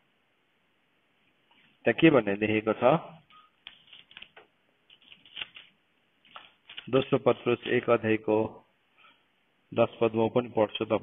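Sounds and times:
man speaking: 1.8s - 3.3s, 6.9s - 8.7s, 9.7s - 11.0s
paper pages turning: 3.6s - 7.2s.

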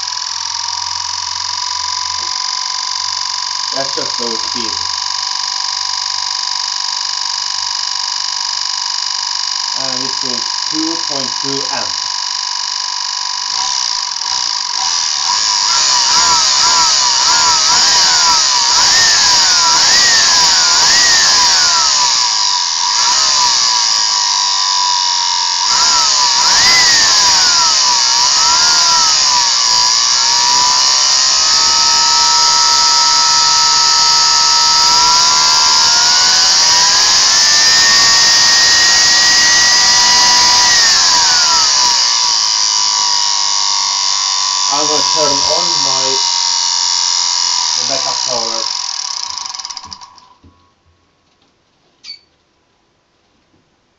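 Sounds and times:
vacuum cleaner motor whining: 0.0s - 50.6s.

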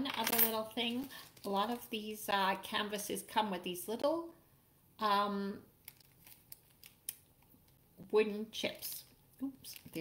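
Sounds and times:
plastic bag crinkling: 5.8s - 7.2s.

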